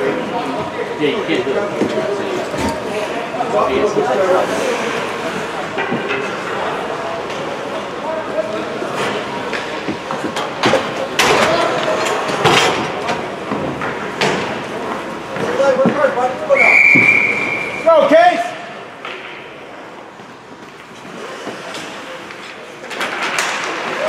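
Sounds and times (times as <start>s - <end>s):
murmur of voices: 0.0s - 24.0s
referee's whistle blast: 16.6s - 17.9s
hockey sticks and puck knocking: 20.7s - 24.0s.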